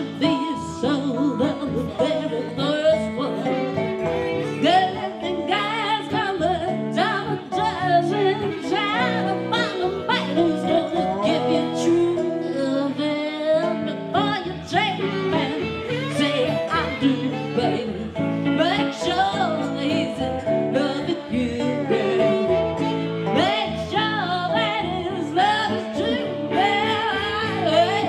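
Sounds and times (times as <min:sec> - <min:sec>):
harmonica bending notes: 0:00.0 - 0:28.0
slide guitar: 0:00.0 - 0:28.0
strummed acoustic guitar: 0:00.0 - 0:28.0
woman singing: 0:00.0 - 0:28.0.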